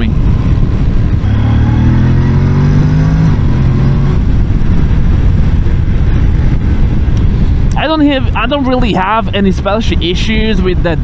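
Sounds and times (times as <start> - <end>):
motorcycle engine revving: 0.0 - 7.7
wind rushing on microphone: 0.0 - 11.0.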